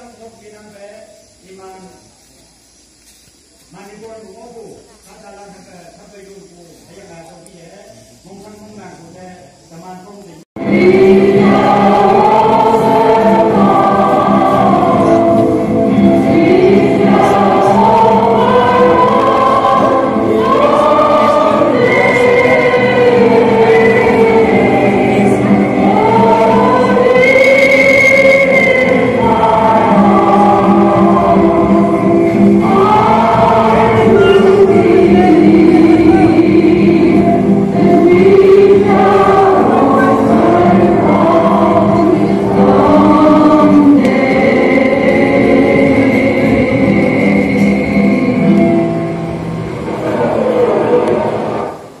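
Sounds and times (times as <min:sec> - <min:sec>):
many voices singing slowly: 0:10.6 - 0:52.0.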